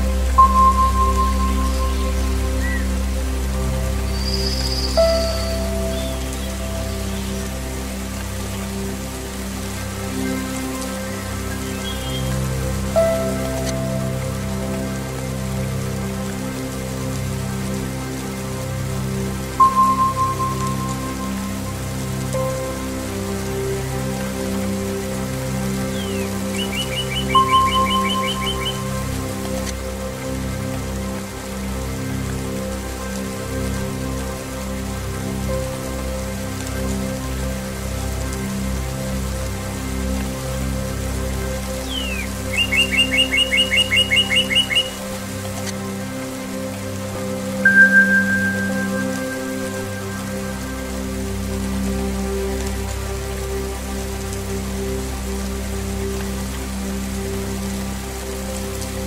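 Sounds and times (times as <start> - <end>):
low sustained music tones: 0.0 - 59.0
rain falling into puddles: 0.0 - 59.0
bird trill: 26.0 - 28.8, 41.9 - 45.0
singing bowl strikes: 47.7 - 49.6.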